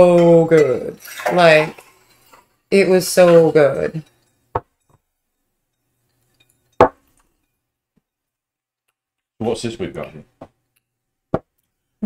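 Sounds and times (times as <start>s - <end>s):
glass clinking on table: 5.8s - 7.6s.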